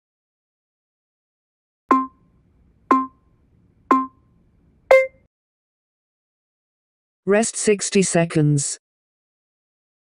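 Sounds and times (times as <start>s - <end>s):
electronic timer beeps: 1.9s - 2.2s, 2.9s - 3.2s, 3.9s - 4.2s, 4.9s - 5.3s.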